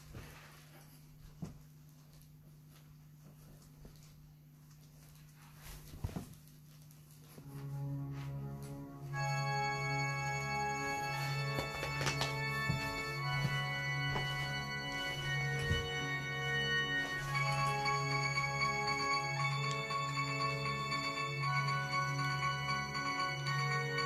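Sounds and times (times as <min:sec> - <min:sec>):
organ-like keyboard chords: 0:07.5 - 0:24.0.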